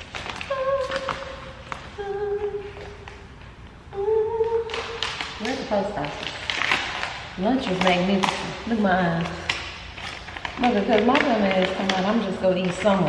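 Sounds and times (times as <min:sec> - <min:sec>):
woman humming: 0:00.4 - 0:03.0, 0:03.9 - 0:04.9
woman talking: 0:05.4 - 0:06.4, 0:07.4 - 0:09.5, 0:10.5 - 0:13.0.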